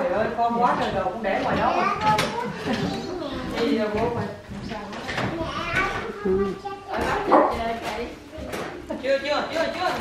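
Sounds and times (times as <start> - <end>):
dog barking: 7.3 - 7.6.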